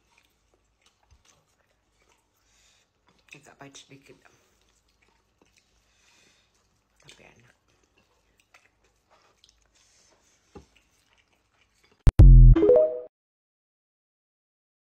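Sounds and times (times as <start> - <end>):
faint chewing sounds: 0.0 - 12.1.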